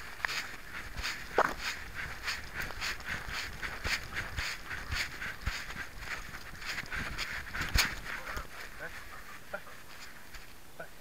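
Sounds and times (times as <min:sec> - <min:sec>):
dog footsteps with collar rattle: 0:00.1 - 0:10.5.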